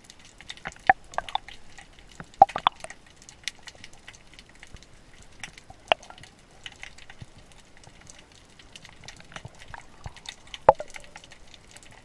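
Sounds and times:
underwater crackle of clicks: 0:00.0 - 0:12.0
watery pops: 0:00.5 - 0:03.6, 0:05.5 - 0:06.3, 0:08.8 - 0:11.5.

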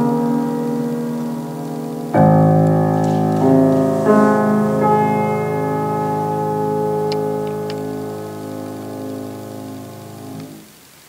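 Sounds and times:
piano chord ringing: 0:00.0 - 0:10.6.

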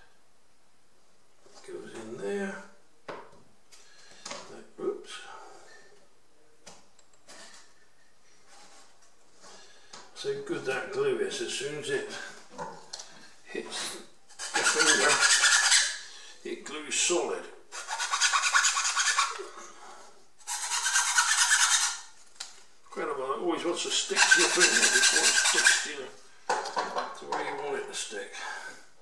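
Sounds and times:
hand file rasping wood: 0:14.4 - 0:16.0, 0:17.8 - 0:19.4, 0:20.4 - 0:22.1, 0:24.1 - 0:26.0.

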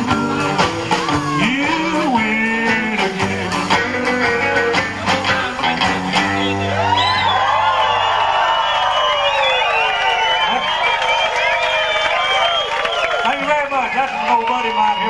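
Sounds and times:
audience cheering and whooping: 0:00.0 - 0:02.6, 0:06.0 - 0:15.0
rockabilly band playing: 0:00.0 - 0:15.0.

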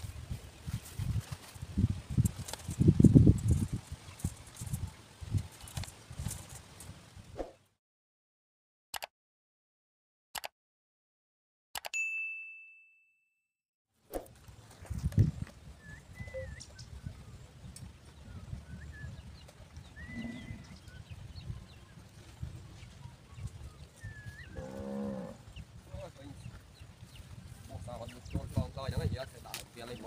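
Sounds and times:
wind rumble on microphone: 0:00.0 - 0:07.4, 0:14.3 - 0:30.0
bell-like ding: 0:12.0 - 0:13.4
short bird chirps: 0:16.0 - 0:17.0
cow mooing: 0:24.5 - 0:25.4.

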